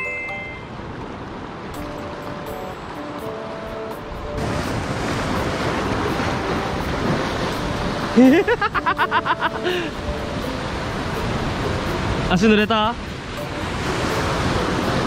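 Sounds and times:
soft background music: 0.0s - 15.0s
surf washing against rocks: 0.7s - 15.0s.

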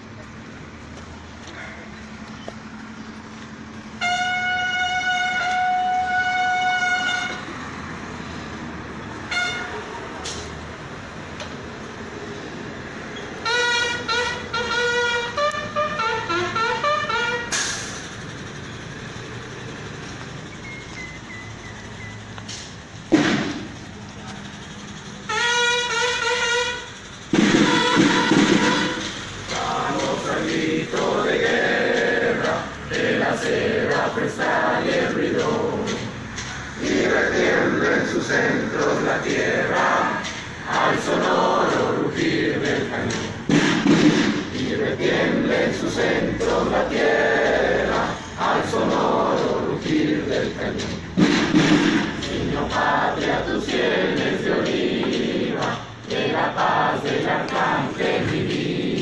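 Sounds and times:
brass horn calls: 4.0s - 7.6s, 9.2s - 10.0s, 13.4s - 17.8s, 25.2s - 30.3s.

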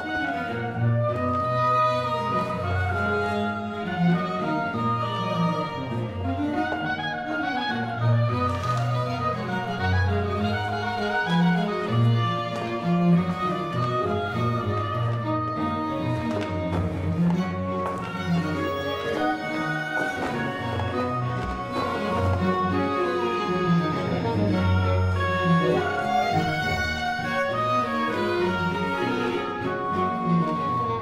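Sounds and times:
cellos and double basses: 0.0s - 31.0s
violins playing melody: 0.0s - 31.0s.

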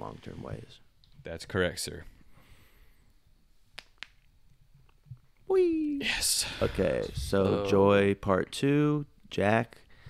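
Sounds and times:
finger snap: 3.8s - 4.3s.

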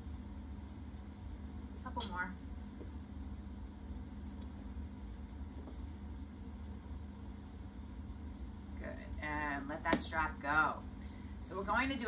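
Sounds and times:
low hum with faint hiss: 0.0s - 12.0s.

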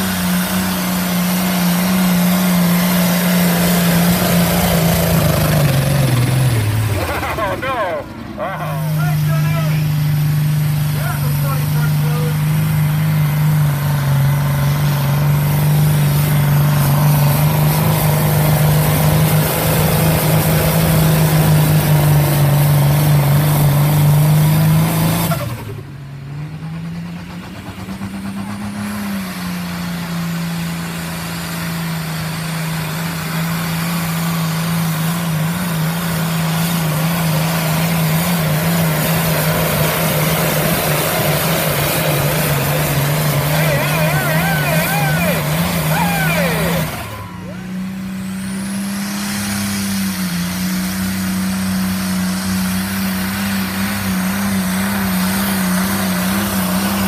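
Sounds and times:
tractor engines running hard: 0.0s - 57.0s
crowd shouting: 43.3s - 47.8s.

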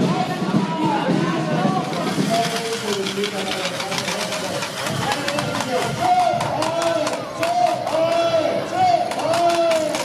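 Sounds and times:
voices: 0.0s - 10.0s.

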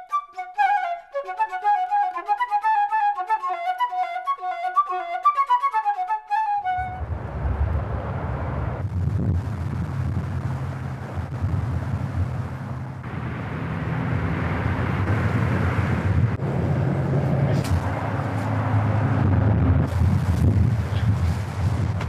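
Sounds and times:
wind buffeting microphone: 6.6s - 22.0s.

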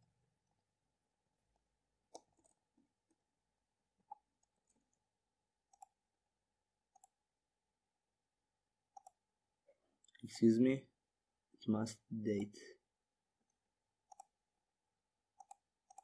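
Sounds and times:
mouse and keyboard clicks: 5.7s - 6.0s, 9.0s - 9.2s, 14.1s - 14.3s, 15.4s - 16.0s.

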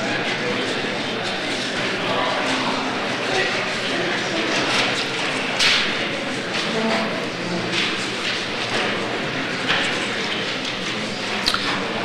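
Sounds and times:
audience murmuring: 0.0s - 12.0s.

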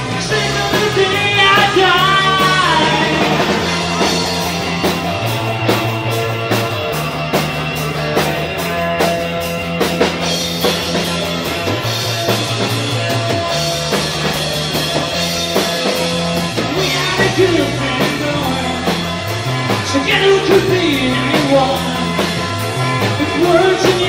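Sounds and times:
bass long notes: 0.0s - 24.0s
drum kit beat: 0.0s - 24.0s
electric guitars: 0.0s - 24.0s.

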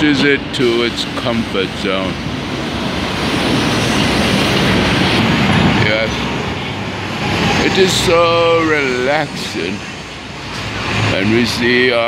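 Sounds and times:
city street traffic roar: 0.0s - 12.0s.

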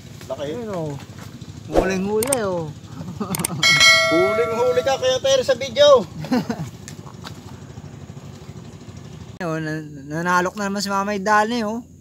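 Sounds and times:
motor engine rumbling: 1.1s - 9.4s.

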